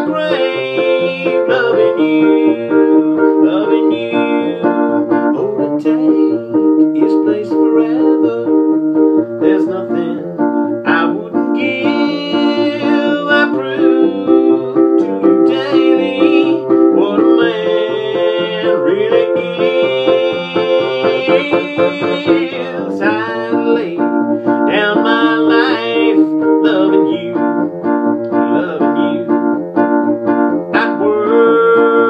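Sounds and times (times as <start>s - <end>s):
man singing: 0.0s - 29.5s, 30.6s - 32.0s
electric piano playing chords: 0.0s - 32.0s.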